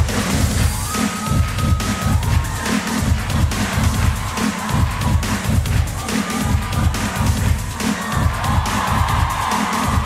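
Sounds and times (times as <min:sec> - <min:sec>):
electronic dance music with bass beat: 0:00.0 - 0:10.0
audience cheering: 0:00.6 - 0:10.0.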